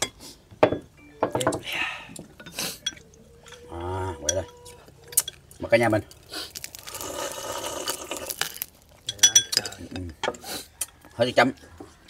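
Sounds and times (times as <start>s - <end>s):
utensil clinking on ceramic bowl: 2.4s - 5.6s, 9.0s - 10.4s
slurping from bowl: 6.8s - 8.5s.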